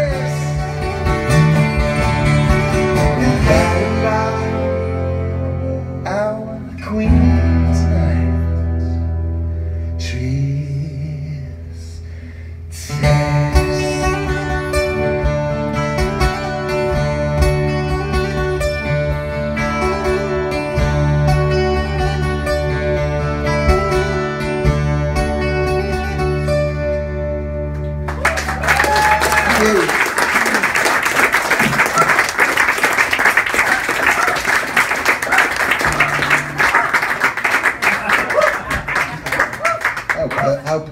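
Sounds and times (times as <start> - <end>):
acoustic guitars: 0.0 - 40.9
bass guitar: 0.0 - 40.9
audience applause: 28.0 - 40.9.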